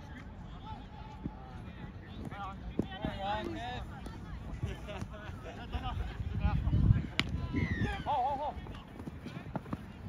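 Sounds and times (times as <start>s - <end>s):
open-air field noise: 0.0s - 10.0s.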